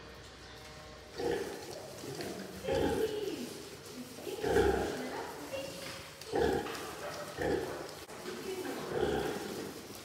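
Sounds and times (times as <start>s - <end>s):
pigs grunting: 1.1s - 3.3s, 4.0s - 5.1s, 6.2s - 8.0s, 8.7s - 9.8s.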